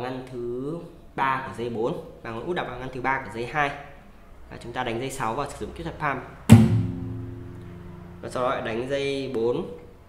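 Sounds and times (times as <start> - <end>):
palm slap on guitar strings: 6.5 - 7.7
low guitar bass note ringing: 6.5 - 8.4.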